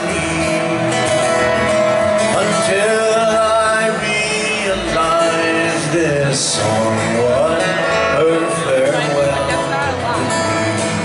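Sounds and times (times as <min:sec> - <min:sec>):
acoustic guitars strumming: 0:00.0 - 0:11.0
bass guitar: 0:00.0 - 0:11.0.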